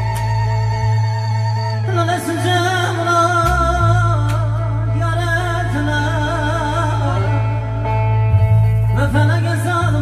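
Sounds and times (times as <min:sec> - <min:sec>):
man singing with vibrato: 0:00.0 - 0:08.0, 0:08.9 - 0:10.0.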